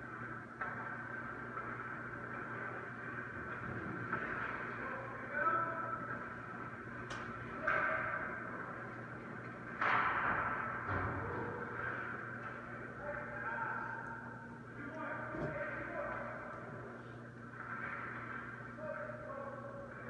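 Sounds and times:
steady hum: 0.0s - 20.0s
skates and sticks on ice: 17.5s - 18.6s.

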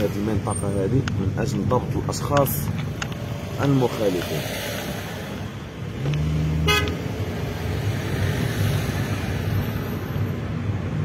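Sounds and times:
car engine and road rumble: 0.0s - 11.0s
low vehicle horn honk: 6.6s - 7.0s.

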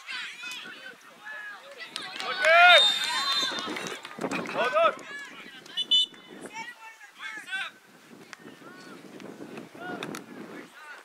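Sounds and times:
people shouting outdoors: 0.0s - 3.9s.

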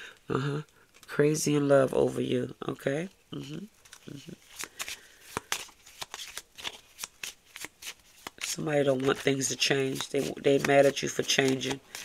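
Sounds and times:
cards being shuffled: 3.8s - 12.0s.

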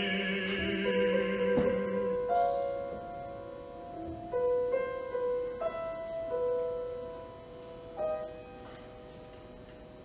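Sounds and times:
piano chord ringing: 0.0s - 9.2s.

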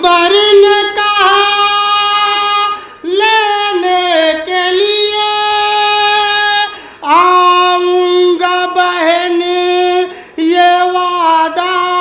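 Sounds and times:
man singing unaccompanied lament: 0.0s - 12.0s.

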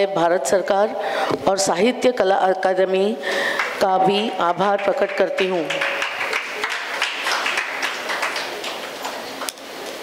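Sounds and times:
audience applauding: 4.8s - 9.3s.

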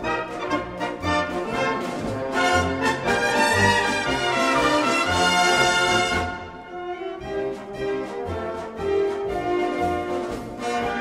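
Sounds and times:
brass band melody: 0.0s - 11.0s.

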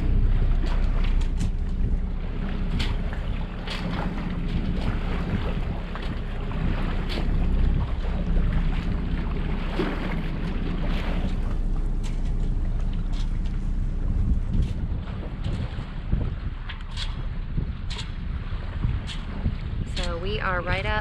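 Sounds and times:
water slaps: 0.0s - 20.4s
outboard motor running: 0.0s - 21.0s
wind buffeting microphone: 0.0s - 21.0s.

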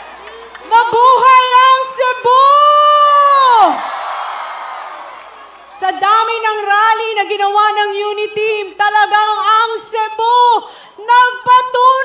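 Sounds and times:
crowd cheering: 0.0s - 7.2s
woman shouting over microphone: 0.7s - 3.8s, 5.8s - 12.0s.

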